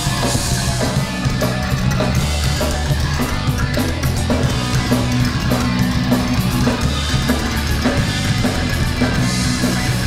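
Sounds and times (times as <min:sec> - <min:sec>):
bass guitar: 0:00.0 - 0:10.0
drum kit beat: 0:00.0 - 0:10.0
electric guitars: 0:00.0 - 0:10.0.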